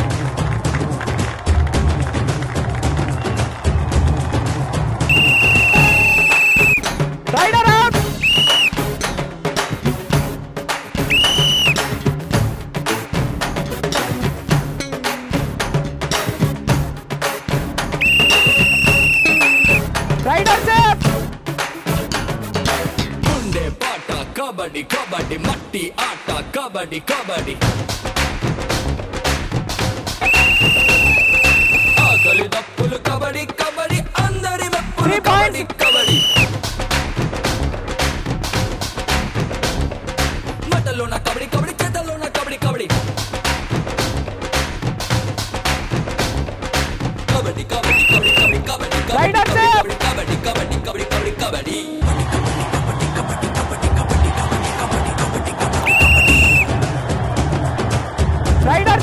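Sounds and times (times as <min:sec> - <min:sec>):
background music with a beat: 0:00.0 - 0:59.0
referee's whistle blast: 0:05.1 - 0:06.9, 0:08.2 - 0:08.8, 0:11.1 - 0:11.8, 0:18.0 - 0:19.8, 0:30.2 - 0:32.4, 0:35.8 - 0:36.5, 0:47.8 - 0:48.6, 0:55.8 - 0:56.7.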